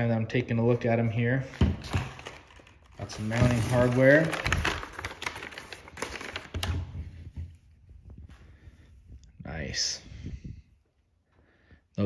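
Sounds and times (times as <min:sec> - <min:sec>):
paper rustling and crinkling: 0:01.8 - 0:07.5.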